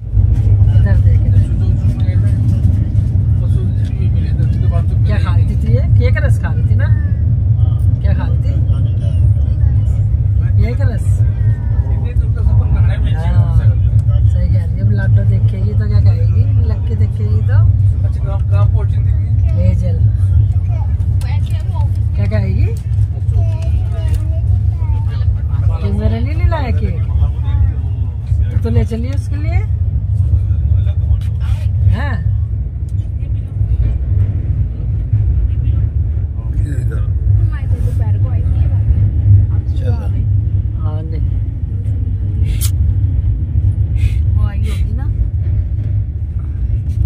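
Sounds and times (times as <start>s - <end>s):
indistinct voices: 0.0s - 43.1s
train rumbling: 0.0s - 47.0s.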